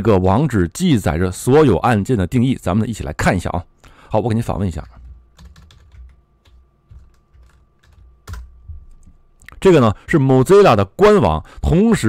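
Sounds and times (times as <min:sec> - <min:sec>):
computer keyboard keys clicking: 0:05.0 - 0:09.1.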